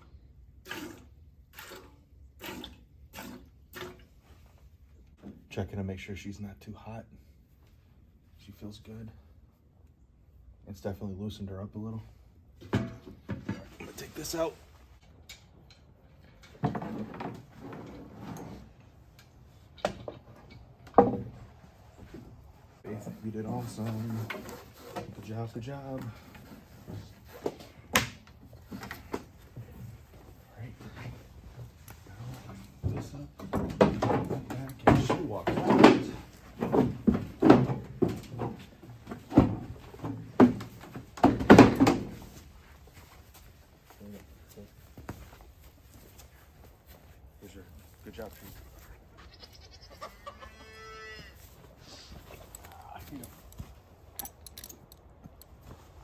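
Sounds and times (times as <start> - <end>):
milking machine clunks and clatter: 12.7 - 13.8, 32.9 - 42.1
timber frame knocking: 20.9 - 21.5, 32.9 - 42.2
hooves clomping on wooden floor: 26.0 - 47.2.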